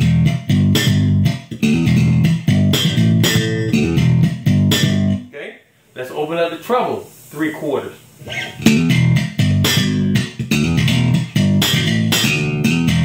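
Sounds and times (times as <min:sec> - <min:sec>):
electric bass plucked notes: 0:00.0 - 0:05.3, 0:08.2 - 0:13.0.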